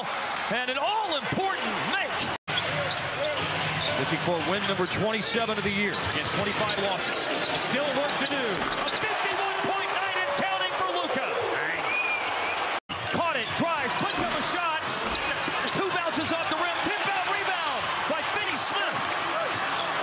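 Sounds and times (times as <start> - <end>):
sneakers squeaking: 5.8 - 9.2, 13.0 - 14.4, 18.9 - 20.0.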